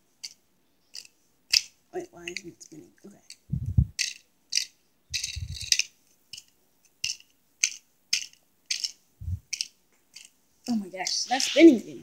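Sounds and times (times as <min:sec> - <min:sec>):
plastic toy pieces clicking: 0:00.2 - 0:02.5, 0:03.3 - 0:10.4
dull low thumps: 0:03.5 - 0:03.9, 0:05.1 - 0:05.7, 0:09.2 - 0:09.5.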